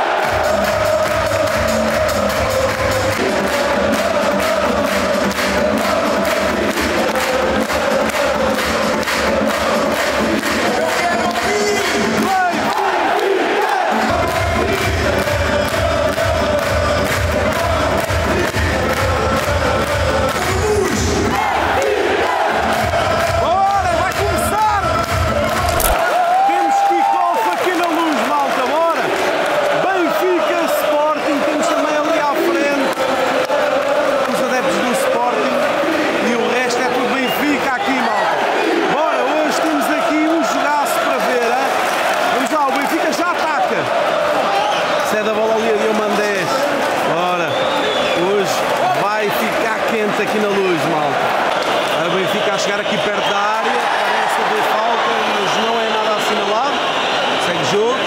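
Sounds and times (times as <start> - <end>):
stadium crowd chanting and singing: 0.0 - 26.3, 27.4 - 58.0.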